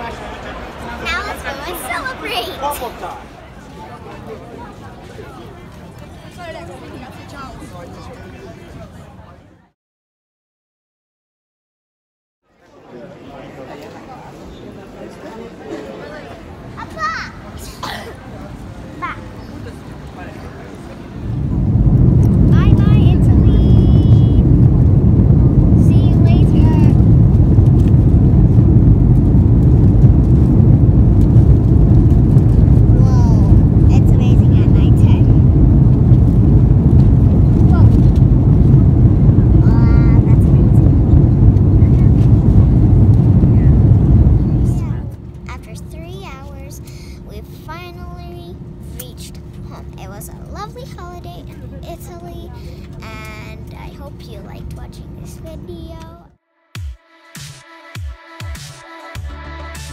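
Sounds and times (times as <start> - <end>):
faint voices: 0.0 - 9.7, 12.6 - 24.5
child talking: 1.0 - 2.9, 16.8 - 18.2, 19.0 - 19.5, 22.5 - 24.5, 25.8 - 27.1, 32.9 - 35.4, 37.7 - 38.1, 39.5 - 40.8, 44.6 - 56.3
jet engine rumble in cabin: 19.5 - 56.2
cabin hum with steady tone: 21.2 - 56.2.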